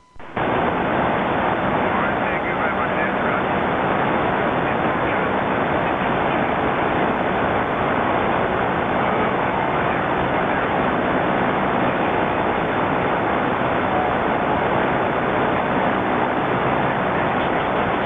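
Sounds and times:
radio static hiss: 0.0s - 18.0s.

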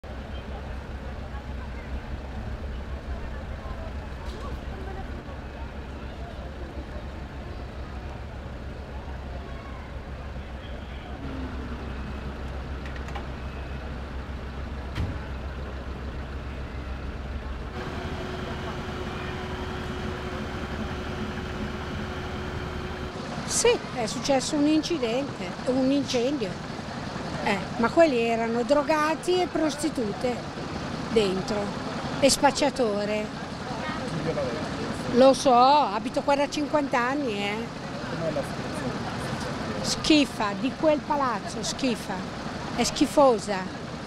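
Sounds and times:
fire engines idling: 0.0s - 44.0s
steady hum: 15.8s - 44.0s.

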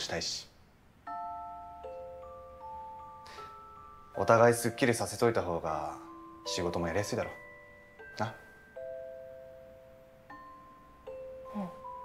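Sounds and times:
bell-like chord ringing: 1.1s - 12.0s.

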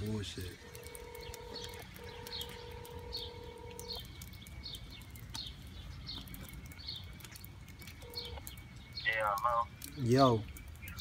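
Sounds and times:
small bird chirping: 0.4s - 11.0s.

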